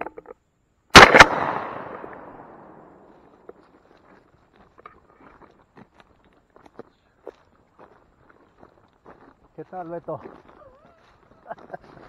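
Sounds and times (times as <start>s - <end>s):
shotgun reports: 1.0s - 2.8s
echoing gunshot tail: 1.0s - 3.1s.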